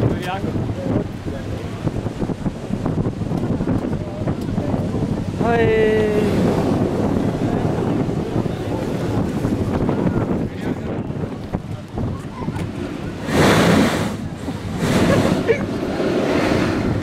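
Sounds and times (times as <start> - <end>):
surf breaking on rocks: 0.0 - 17.0
wind rushing over microphone: 0.0 - 17.0.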